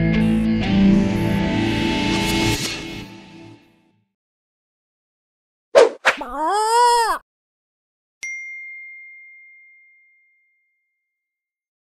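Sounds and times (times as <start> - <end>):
bell-like chime: 8.2 - 11.2.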